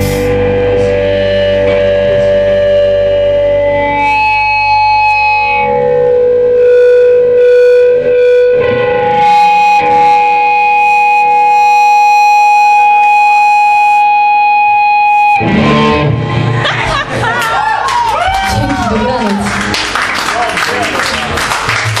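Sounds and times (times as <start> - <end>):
distorted electric guitar: 0.0 - 17.3.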